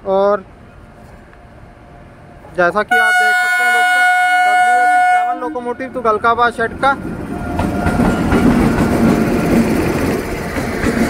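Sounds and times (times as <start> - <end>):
train wheels rumbling on rails: 0.5 - 11.0.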